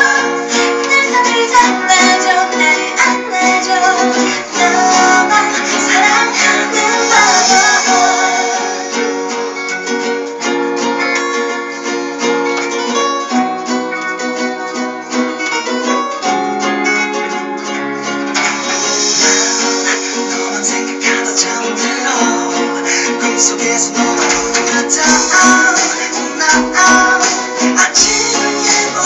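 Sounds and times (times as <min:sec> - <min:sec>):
two acoustic guitars playing: 0:00.0 - 0:29.0.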